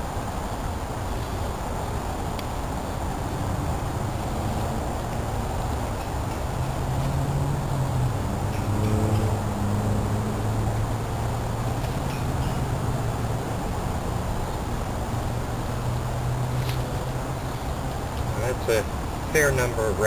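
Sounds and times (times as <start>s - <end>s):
steady rushing noise: 0.0s - 20.0s.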